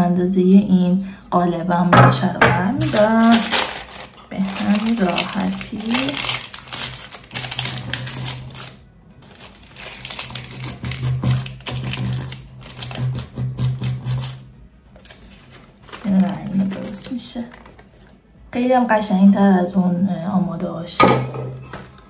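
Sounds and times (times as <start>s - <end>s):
baking paper crinkling: 2.7s - 18.2s.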